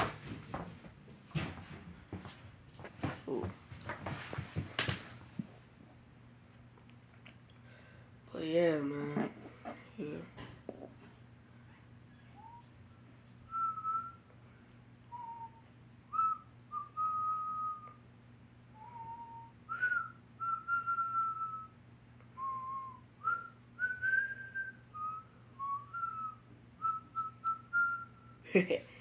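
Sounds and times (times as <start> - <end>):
person whistling a tune: 13.5 - 14.3, 15.1 - 18.0, 18.8 - 21.7, 22.4 - 28.4.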